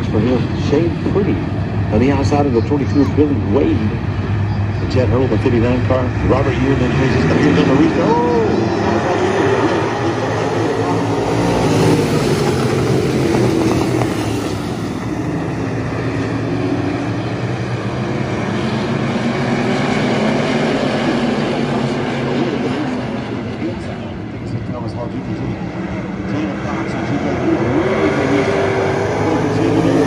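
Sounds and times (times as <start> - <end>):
race car engines: 0.0 - 30.0.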